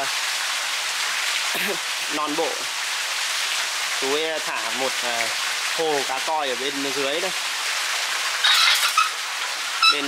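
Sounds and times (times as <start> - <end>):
water splashing into a pond: 0.0 - 10.0.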